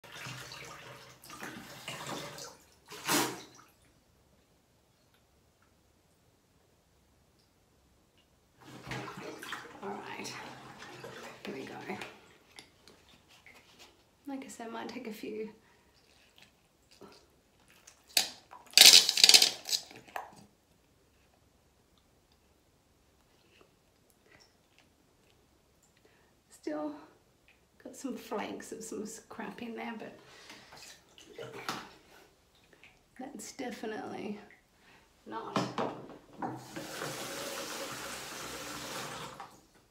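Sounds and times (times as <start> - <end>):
water splashing in plastic bowl: 0.0 - 3.9, 8.6 - 13.6, 17.0 - 20.5
water squeezed from bulb syringe: 2.9 - 3.6
water splashing into plastic bowl: 8.6 - 9.8.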